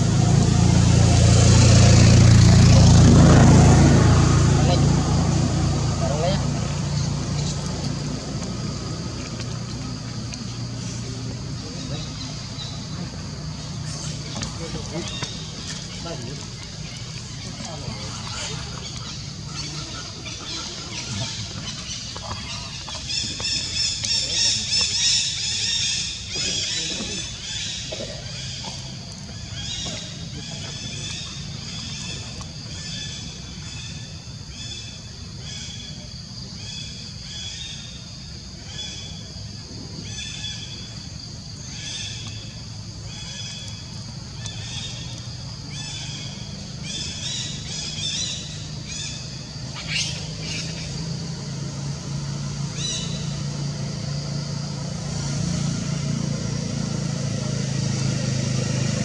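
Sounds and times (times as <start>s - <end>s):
low engine drone: 0.0s - 59.0s.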